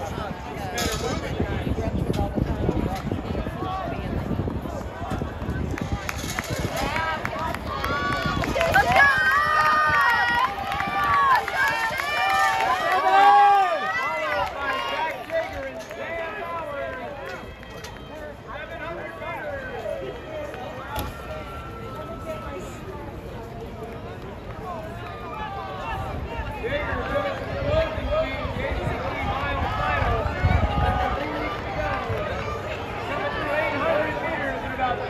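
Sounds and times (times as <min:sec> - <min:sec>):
spectators shouting and cheering: 0:00.0 - 0:35.0.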